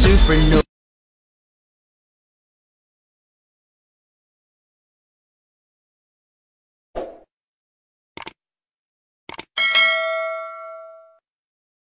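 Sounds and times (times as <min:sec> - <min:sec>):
mouse click double ticks: 0:08.2 - 0:08.4, 0:09.3 - 0:09.5
bell ding: 0:09.6 - 0:11.2.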